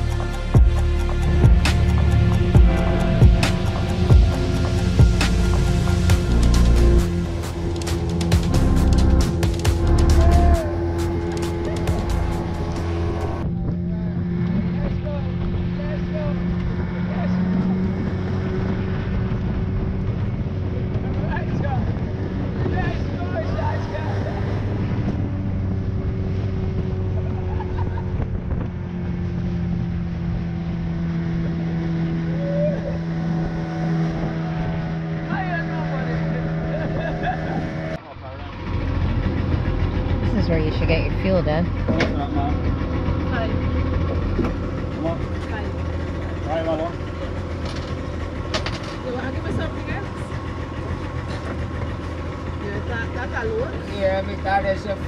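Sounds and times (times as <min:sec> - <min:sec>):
music: 0:00.0 - 0:13.4
outboard motor drone: 0:00.0 - 0:55.0
rushing wind and water: 0:00.0 - 0:55.0
voices and laughter: 0:27.0 - 0:28.3, 0:36.3 - 0:38.0.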